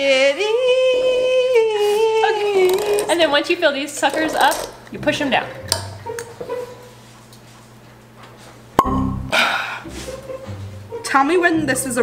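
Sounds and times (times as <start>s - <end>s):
cork popping from wine bottle: 8.8s - 9.3s.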